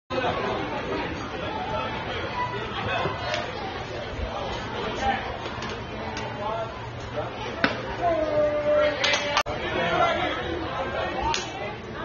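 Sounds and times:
background chatter of voices: 0:00.1 - 0:12.0.

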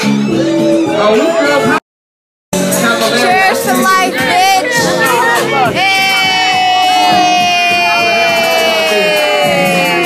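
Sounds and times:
loud party music: 0:00.0 - 0:01.8, 0:02.5 - 0:10.0
crowd voices: 0:02.6 - 0:10.0.

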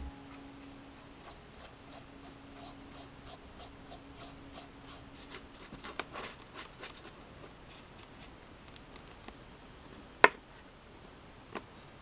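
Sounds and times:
scratchy paintbrush strokes: 0:00.0 - 0:09.0.

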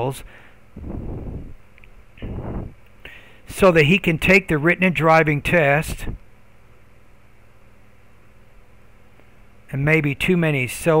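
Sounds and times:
breaths into microphone: 0:00.2 - 0:01.6, 0:02.2 - 0:03.5.

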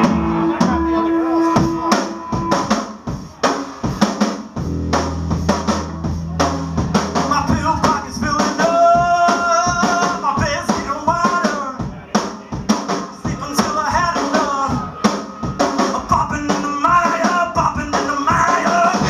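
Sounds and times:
drum kit beat: 0:00.0 - 0:19.0
electric bass and guitar: 0:04.6 - 0:08.3
man singing into microphone: 0:07.2 - 0:11.9, 0:13.2 - 0:15.0, 0:15.8 - 0:19.0.

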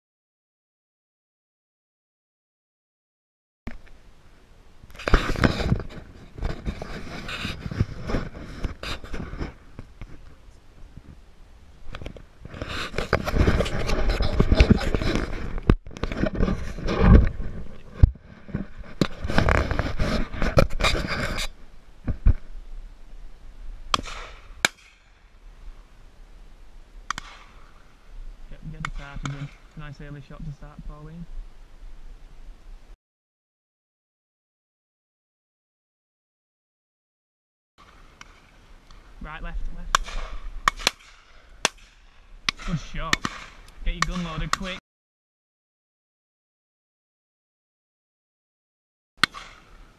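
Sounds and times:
clothing and wind buffeting: 0:03.8 - 0:33.0.

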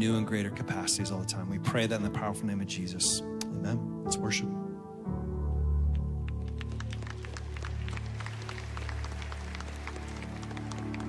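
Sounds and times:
low keyboard pad chord: 0:00.0 - 0:11.0.

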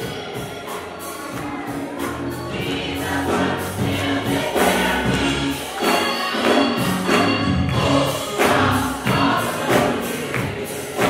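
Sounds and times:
gospel choir singing: 0:00.0 - 0:11.0
keyboard accompaniment: 0:00.0 - 0:11.0
steady beat: 0:00.0 - 0:11.0.

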